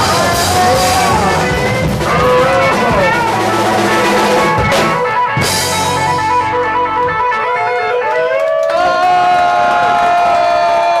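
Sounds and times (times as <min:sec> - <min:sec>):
electric guitar bending notes: 0:00.0 - 0:09.0
crowd noise: 0:00.0 - 0:11.0.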